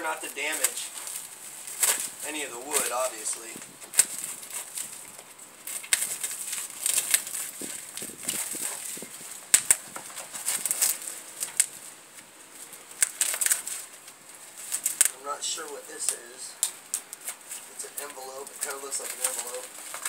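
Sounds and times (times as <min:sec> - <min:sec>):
plastic crinkling and rustling: 0:00.0 - 0:20.0
knife slitting plastic wrapping: 0:00.3 - 0:03.0, 0:03.8 - 0:11.8, 0:12.9 - 0:15.2, 0:16.9 - 0:20.0.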